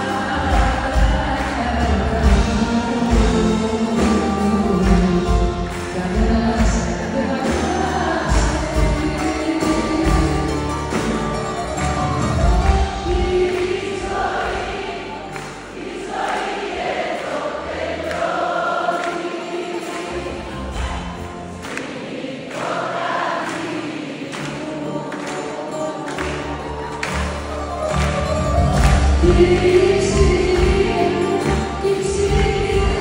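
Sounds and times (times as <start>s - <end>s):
band accompaniment: 0.0s - 33.0s.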